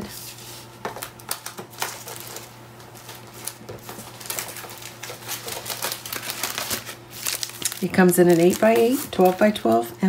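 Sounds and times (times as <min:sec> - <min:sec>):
plastic wrap crinkling: 0:00.8 - 0:10.0.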